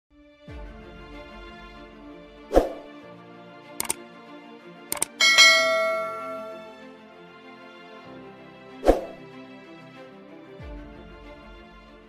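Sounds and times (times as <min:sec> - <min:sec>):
mouse clicks: 0:04.9 - 0:05.2
notification bell chime: 0:05.0 - 0:06.8.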